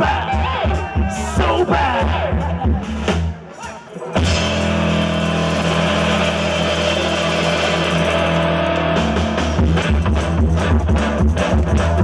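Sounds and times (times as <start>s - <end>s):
drum kit beat: 4.2s - 12.0s
electric guitar and bass chord: 4.2s - 12.0s.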